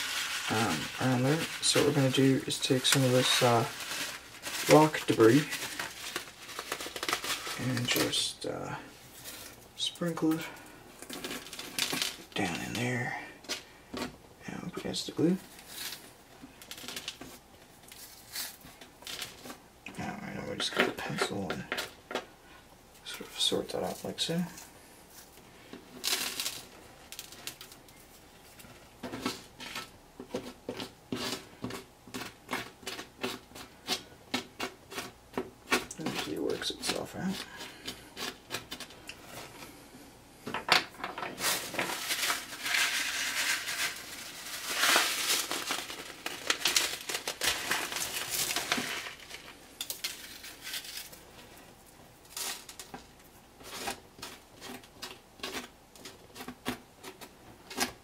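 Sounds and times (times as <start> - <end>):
continuous rustling and scraping: 0.0 - 58.0
gritty clicks and scratches: 52.3 - 58.0.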